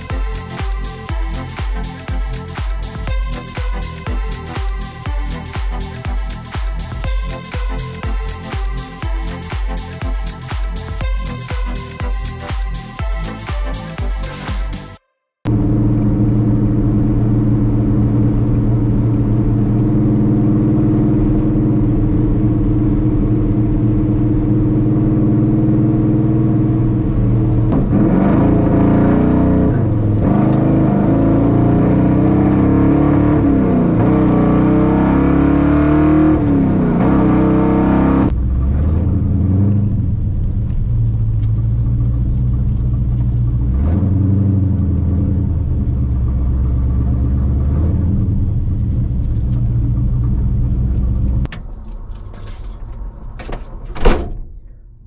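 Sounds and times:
car engine revving while driving: 15.5s - 51.5s.

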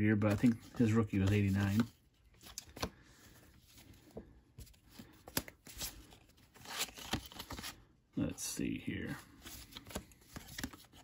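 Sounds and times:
cards flicking and rustling: 0.1s - 7.8s, 9.3s - 11.0s.

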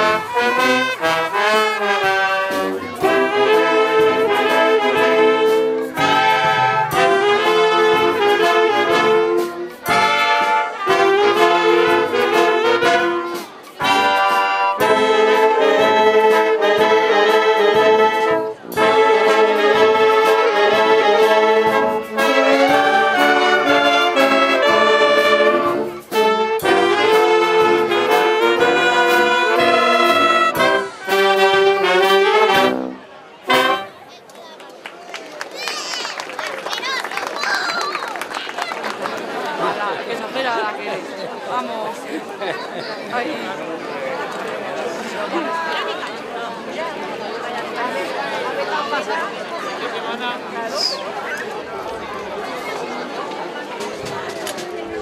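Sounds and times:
wind band playing: 0.0s - 34.2s.

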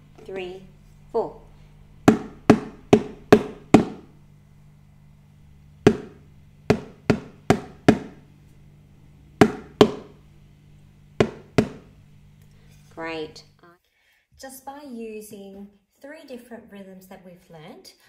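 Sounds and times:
spatula tapping plastic container: 2.0s - 4.1s, 5.8s - 8.2s, 9.4s - 10.2s, 11.2s - 11.9s.

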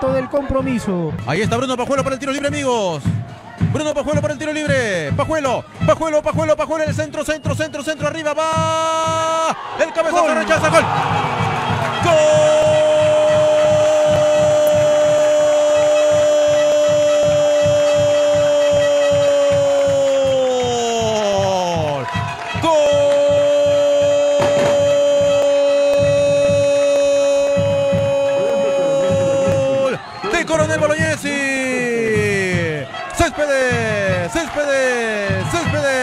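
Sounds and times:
steady low beat: 10.8s - 36.0s.

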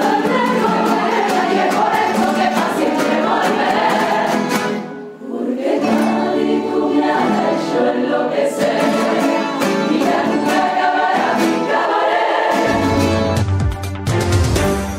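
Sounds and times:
large choir singing in harmony: 0.0s - 13.4s
strummed guitars: 0.0s - 14.9s.

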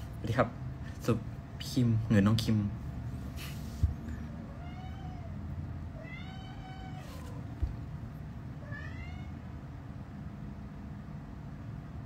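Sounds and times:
steady low hum: 0.0s - 12.0s
cat meowing: 4.3s - 7.6s, 8.6s - 9.5s.

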